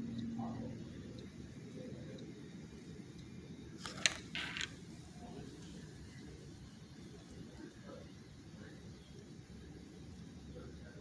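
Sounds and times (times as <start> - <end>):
magazine page rustling: 3.8 - 4.8.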